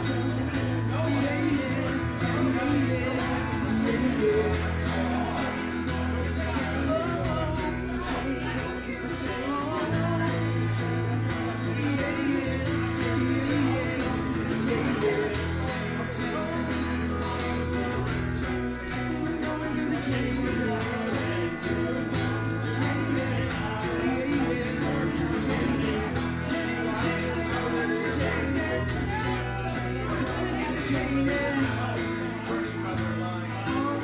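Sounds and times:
live band with guitar: 0.0 - 34.0.

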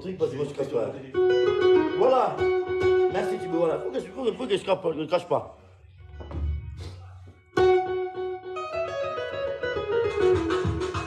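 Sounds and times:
electric bass guitar notes: 1.1 - 4.3.

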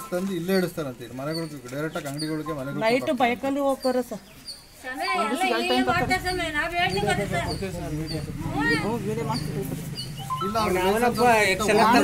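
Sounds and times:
man talking: 7.4 - 12.0.

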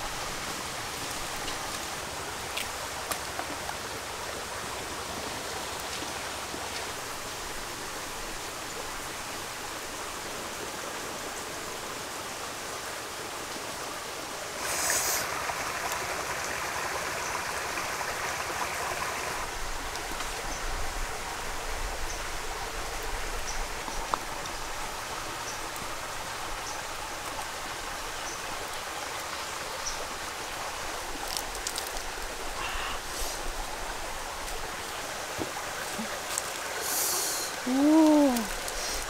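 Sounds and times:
stream flowing: 0.0 - 39.0.

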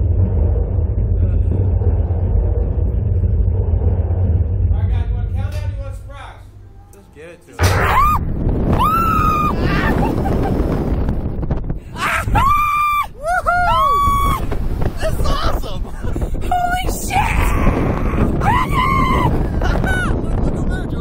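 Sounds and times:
wind rushing on camera: 7.6 - 21.0.

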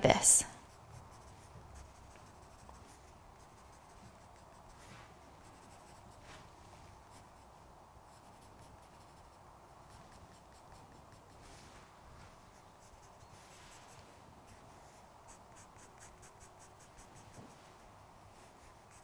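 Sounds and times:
pencil scratching on paper: 0.6 - 6.2, 8.1 - 11.6, 12.5 - 17.6, 18.6 - 19.0.

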